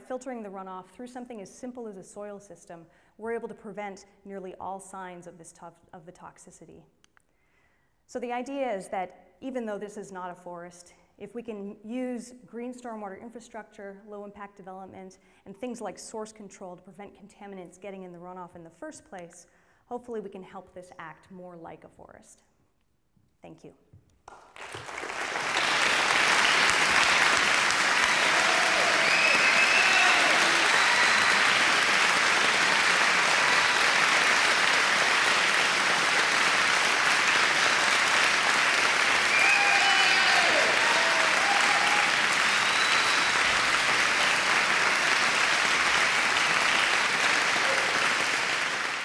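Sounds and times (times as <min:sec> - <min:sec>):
audience applauding: 0:24.3 - 0:49.0
whoops and cheers: 0:25.6 - 0:32.0, 0:39.1 - 0:44.5.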